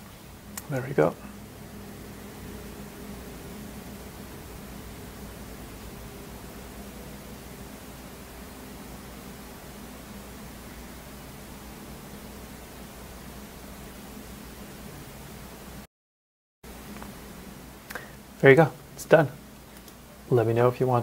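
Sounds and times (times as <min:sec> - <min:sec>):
microphone hiss: 0:00.0 - 0:15.9, 0:16.7 - 0:21.0.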